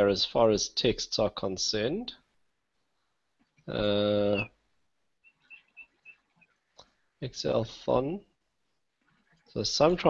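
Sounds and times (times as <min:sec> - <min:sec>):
faint high-pitched chirps: 0:04.1 - 0:04.6, 0:05.2 - 0:07.0.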